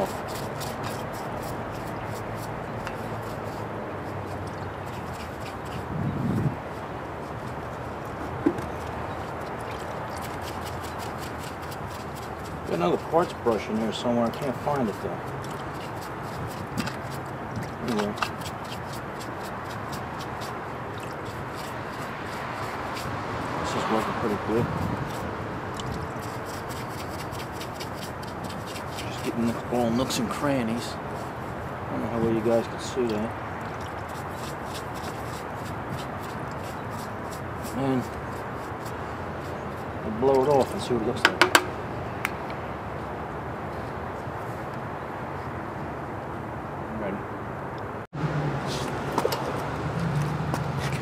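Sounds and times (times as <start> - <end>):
brush scrubbing metal engine block: 0.0 - 5.9, 9.2 - 25.3, 26.1 - 31.4, 33.9 - 41.6.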